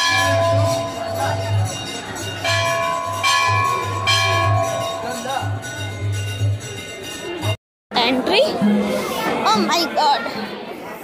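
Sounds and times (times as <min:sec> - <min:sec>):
metal bell ringing: 0:00.0 - 0:07.6.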